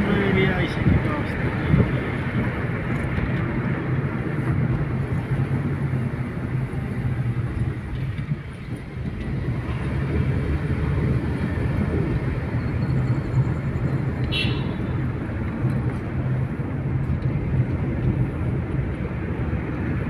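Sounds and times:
car cabin road rumble: 0.0s - 20.0s.

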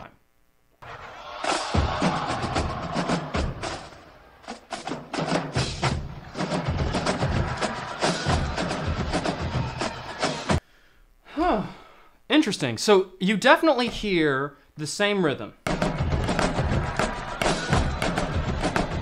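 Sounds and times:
bass drums: 4.8s - 10.6s, 15.6s - 19.0s.

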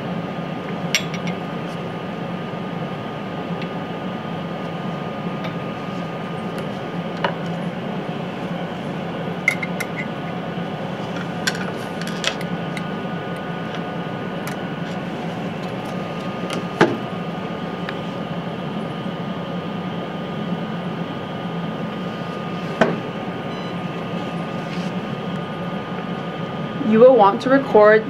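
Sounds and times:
ventilation hum: 0.0s - 28.0s.

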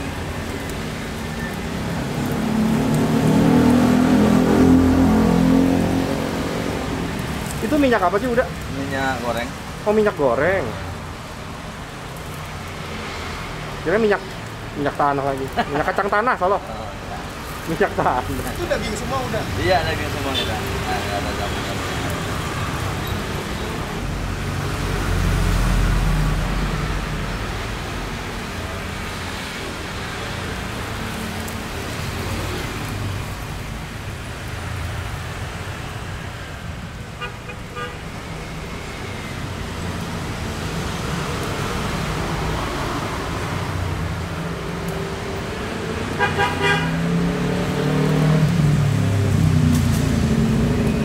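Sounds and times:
cars passing: 0.0s - 51.0s
constant hiss: 6.2s - 46.8s.

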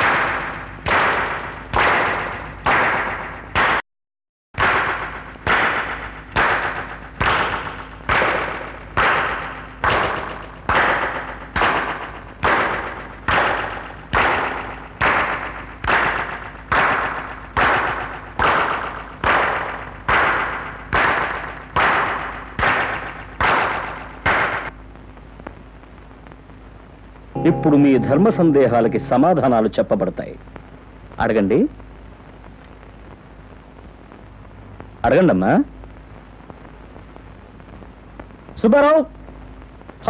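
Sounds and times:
faint steady hum: 4.9s - 40.0s
sharp strikes: 27.4s - 29.8s.

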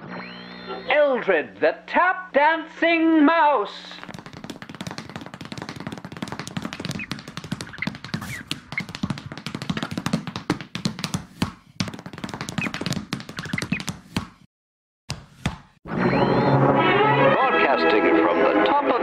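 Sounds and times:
tap dancing clicks: 4.0s - 14.4s.

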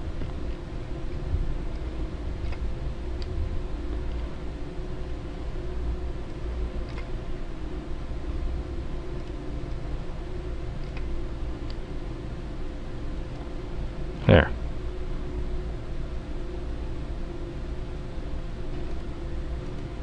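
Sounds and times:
low hum and hiss: 0.0s - 20.0s
computer mouse clicks: 6.8s - 7.1s, 10.8s - 11.8s.

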